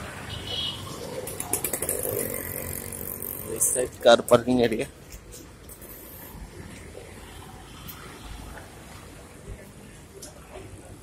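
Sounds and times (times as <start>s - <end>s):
vehicle engines on street: 0.0s - 11.0s.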